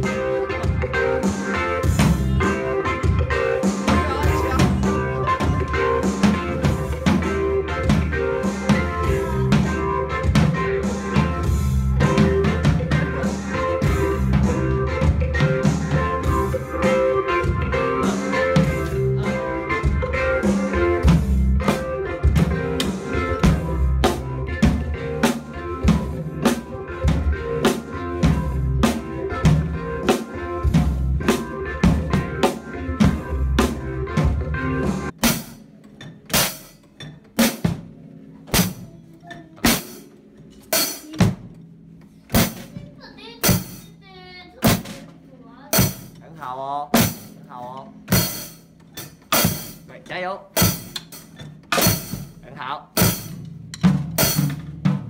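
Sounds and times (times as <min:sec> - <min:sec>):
backing music track: 0:00.0 - 0:55.0
drum kit playing: 0:00.0 - 0:55.0.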